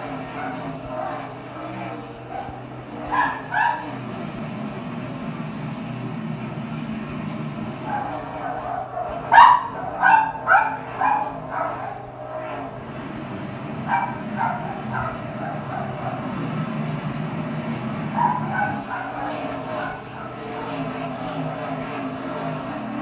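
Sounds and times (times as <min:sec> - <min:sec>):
dogs barking: 0:00.0 - 0:13.0, 0:13.7 - 0:16.6, 0:18.1 - 0:23.0
race car engines on tv: 0:00.0 - 0:23.0.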